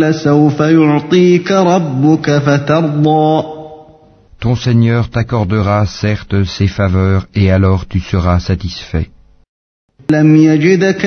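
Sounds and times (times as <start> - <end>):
man chanting melodic recitation: 0.0 - 9.1, 10.1 - 11.0.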